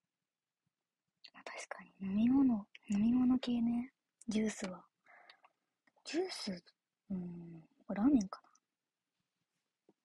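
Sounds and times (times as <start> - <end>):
woman speaking softly: 1.3 - 4.8.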